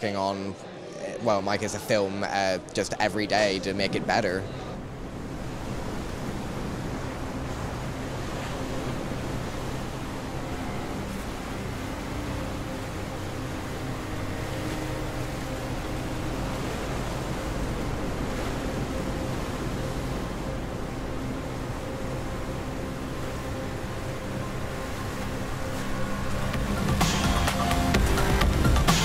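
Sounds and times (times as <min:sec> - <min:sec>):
sea surf breaking: 0:00.1 - 0:29.0.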